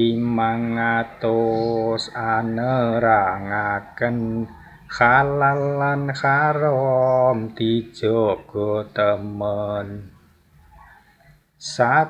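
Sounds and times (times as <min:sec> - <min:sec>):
man chanting: 0:00.0 - 0:10.2, 0:11.6 - 0:12.0.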